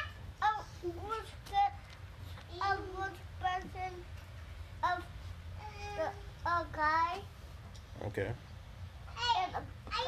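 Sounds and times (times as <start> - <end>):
child singing wordless syllables: 0.0 - 1.8, 2.5 - 4.2, 4.8 - 7.3
steady low hum: 0.0 - 10.0.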